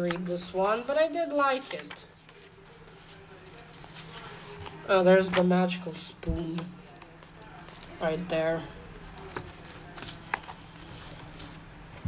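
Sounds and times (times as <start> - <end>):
book pages turning: 0.0 - 5.5, 6.2 - 8.2, 8.9 - 12.0.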